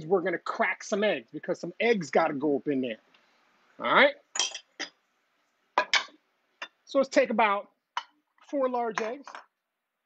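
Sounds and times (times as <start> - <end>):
kitchenware clinking: 4.3 - 5.0, 5.8 - 6.8.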